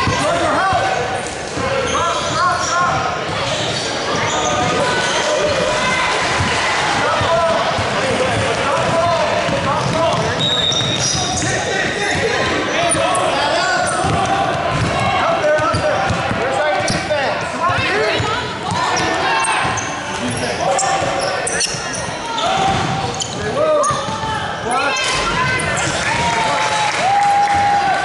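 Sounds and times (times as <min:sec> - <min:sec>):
voices calling out in gym: 0:00.0 - 0:28.0.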